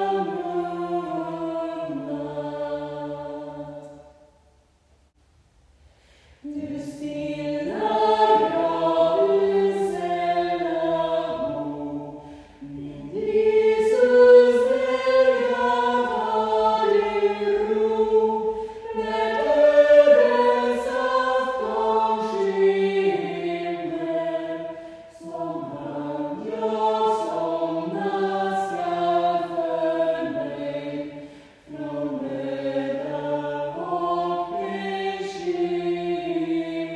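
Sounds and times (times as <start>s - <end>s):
choir singing a hymn: 0.0s - 4.2s, 6.4s - 36.9s.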